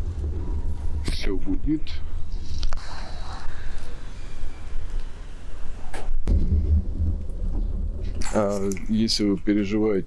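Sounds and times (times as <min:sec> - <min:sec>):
sharp crack: 0:05.9 - 0:09.7.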